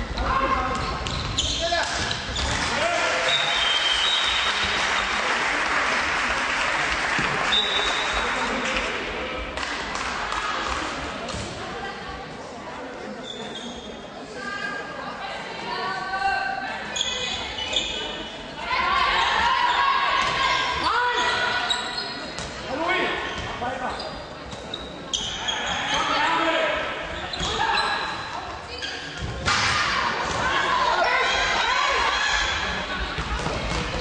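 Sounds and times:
people shouting in a hall: 2.5s - 5.2s, 18.6s - 21.9s, 29.4s - 33.0s.

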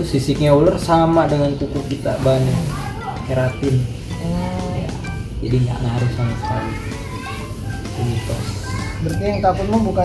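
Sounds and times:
men talking: 0.0s - 10.0s
children playing: 1.1s - 10.0s.

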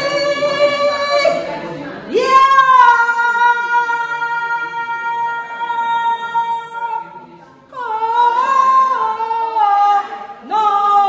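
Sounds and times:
woman singing unaccompanied: 0.0s - 1.5s, 2.1s - 7.1s, 7.7s - 11.0s.

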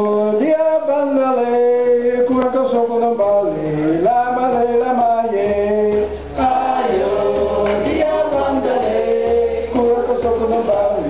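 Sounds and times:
group of voices singing: 5.3s - 11.0s.

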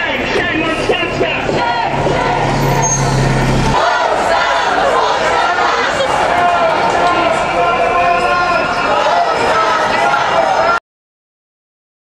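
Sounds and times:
vehicle engine droning: 0.0s - 10.7s
street crowd noise: 0.0s - 10.8s.

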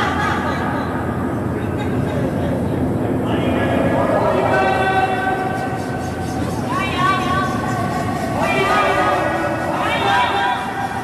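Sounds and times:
players shouting sweeping calls: 4.2s - 11.0s.

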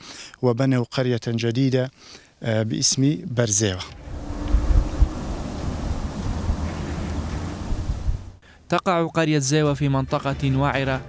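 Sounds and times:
wind buffeting microphone: 4.0s - 8.4s.

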